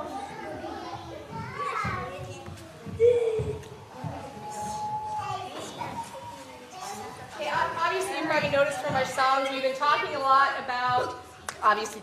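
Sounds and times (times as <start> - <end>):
children chattering: 0.0 - 11.5
murmured adult voices: 0.0 - 12.0.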